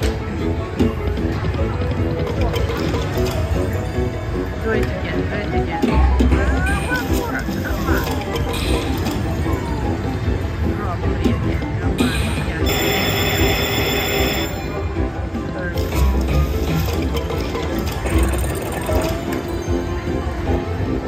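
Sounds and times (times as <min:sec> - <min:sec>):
slot machine music and effects: 0:00.0 - 0:21.0
casino chatter: 0:00.1 - 0:14.8, 0:15.5 - 0:20.4.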